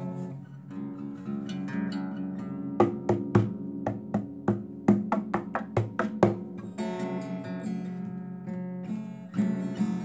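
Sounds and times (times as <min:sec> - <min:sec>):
acoustic guitar strummed percussively: 0:00.0 - 0:10.0.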